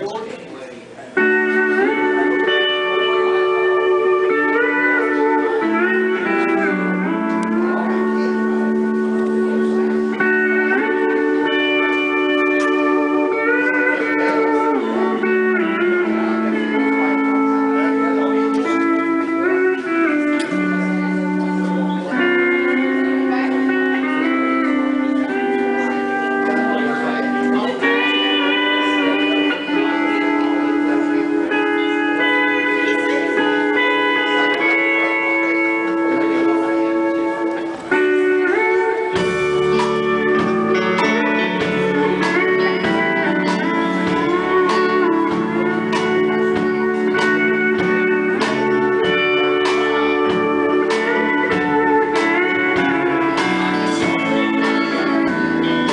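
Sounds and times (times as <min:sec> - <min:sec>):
pedal steel guitar playing: 0:01.1 - 0:55.9.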